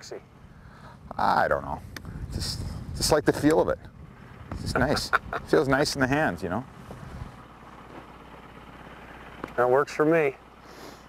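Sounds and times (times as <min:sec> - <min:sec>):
outboard motor idling: 0:00.0 - 0:11.0.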